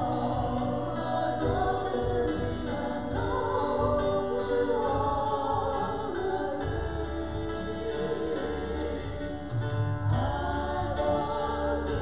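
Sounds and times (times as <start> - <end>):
people singing into microphones: 0.0 - 12.0
piano accompaniment: 0.0 - 12.0.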